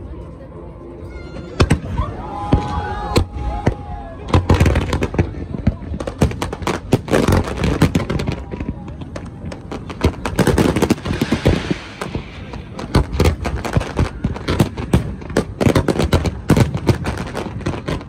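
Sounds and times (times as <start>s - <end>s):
fireworks bursting with sharp bangs: 1.6s - 18.0s
fireworks hiss and crackle: 4.3s - 18.0s.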